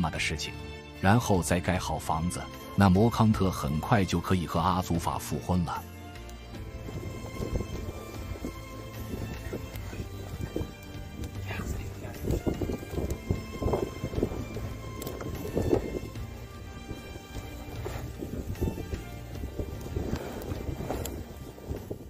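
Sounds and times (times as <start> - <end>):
background music: 0.0 - 22.0
wind rumbling on microphone: 6.4 - 22.0.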